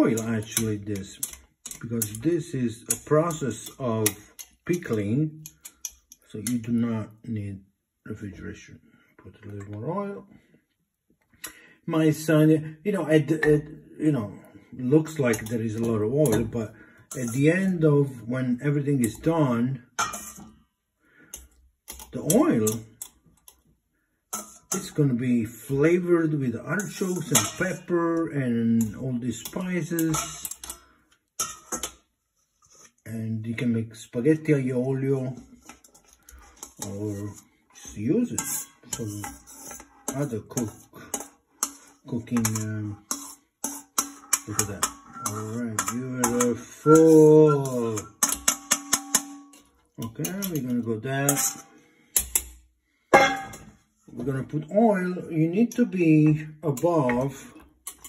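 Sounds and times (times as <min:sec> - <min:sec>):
metal tongs clinking on steel bowl: 0:00.0 - 0:06.6, 0:15.2 - 0:17.5, 0:20.0 - 0:20.5, 0:21.4 - 0:23.6, 0:26.8 - 0:27.9, 0:28.8 - 0:30.8, 0:31.4 - 0:32.0, 0:38.3 - 0:52.5
metal tongs clicking on glass jar: 0:00.2 - 0:02.2.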